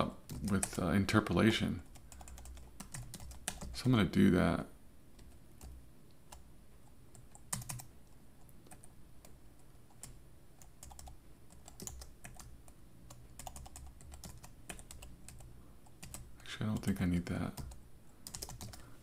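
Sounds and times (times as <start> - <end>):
computer keyboard typing: 0.2 - 0.8, 1.8 - 3.8, 5.2 - 6.4, 7.1 - 18.9.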